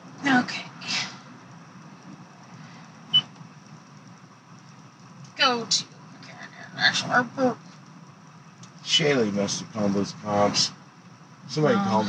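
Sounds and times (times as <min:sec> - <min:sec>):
car engine rumble: 0:00.0 - 0:11.7.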